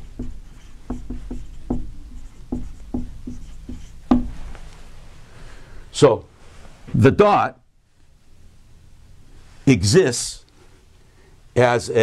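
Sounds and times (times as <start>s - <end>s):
marker writing on whiteboard: 0.0s - 4.4s.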